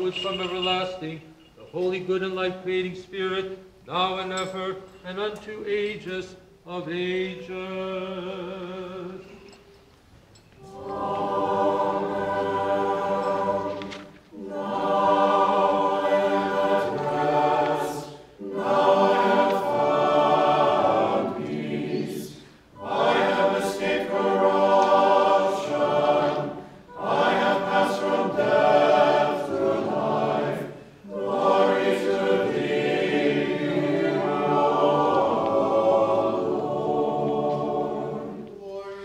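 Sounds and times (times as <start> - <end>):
choir singing a cappella chant: 10.6 - 39.0.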